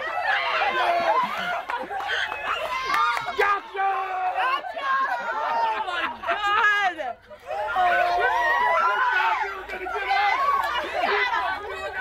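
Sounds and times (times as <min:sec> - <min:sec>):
young women chattering excitedly: 0:02.7 - 0:12.0.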